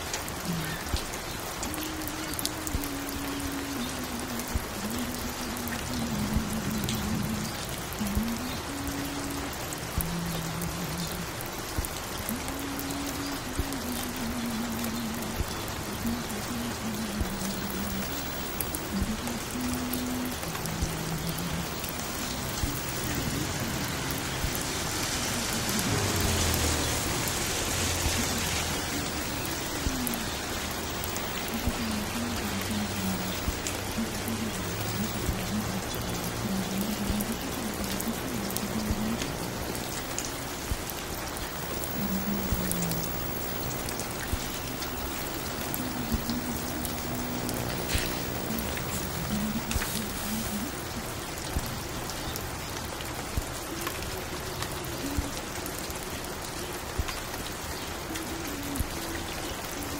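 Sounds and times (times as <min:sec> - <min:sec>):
steady rain: 0:00.0 - 0:59.9
muffled music: 0:00.4 - 0:51.8
wash of noise with falling tone: 0:16.0 - 0:51.9.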